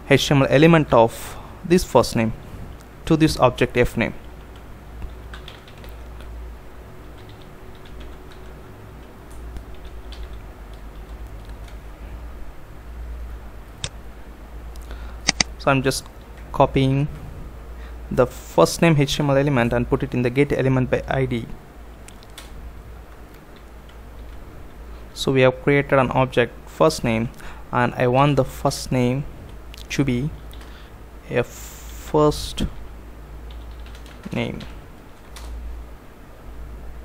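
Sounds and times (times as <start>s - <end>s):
low steady hum: 0.0s - 37.0s.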